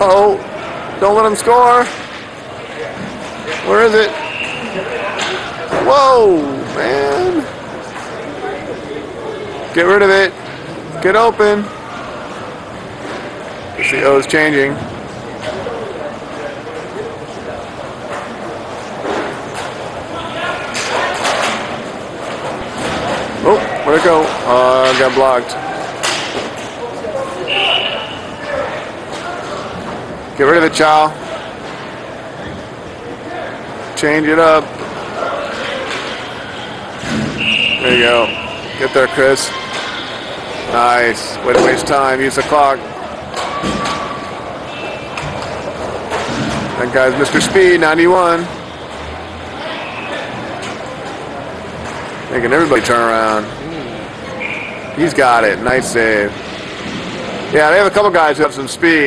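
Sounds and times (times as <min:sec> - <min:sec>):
skating and hall ambience: 0:00.0 - 0:59.0.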